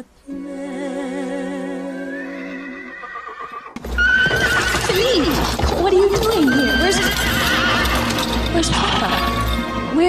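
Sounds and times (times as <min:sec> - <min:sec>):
horse neighing: 0:02.0 - 0:09.8
horse hooves: 0:03.4 - 0:10.0.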